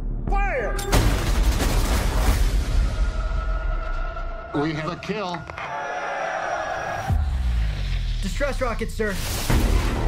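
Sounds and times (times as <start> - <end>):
sustained trailer music: 0.0 - 5.7, 6.5 - 10.0.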